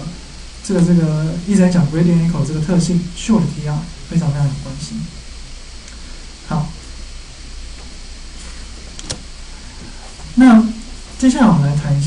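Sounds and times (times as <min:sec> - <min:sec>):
low hum and hiss: 0:00.0 - 0:12.0.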